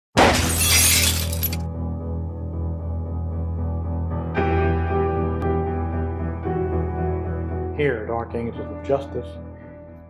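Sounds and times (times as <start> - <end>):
glass shattering sound effect: 0.2 - 1.6
low droning music: 1.7 - 10.0.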